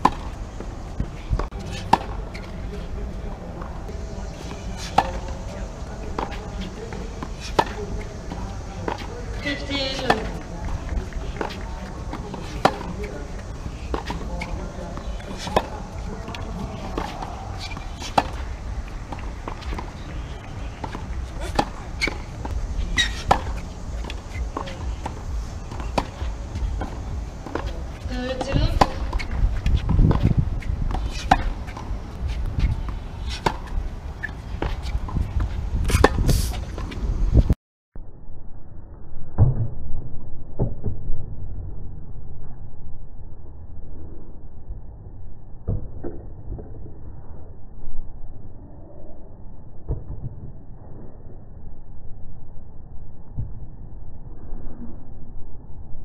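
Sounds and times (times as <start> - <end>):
tennis balls struck by rackets: 0.0 - 37.1
outdoor background noise: 0.0 - 56.0
steady low rumble: 0.0 - 56.0
tennis ball on racket pop: 35.8 - 36.9.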